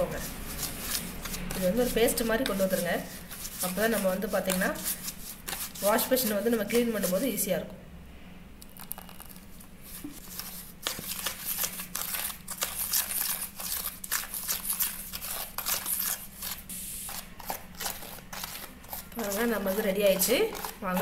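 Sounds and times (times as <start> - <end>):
spoon scraping wet paste: 0.0 - 7.2, 8.7 - 21.0.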